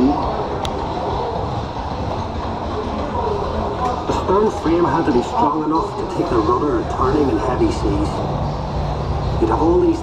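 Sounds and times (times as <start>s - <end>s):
ride car rolling on track: 0.0s - 10.0s.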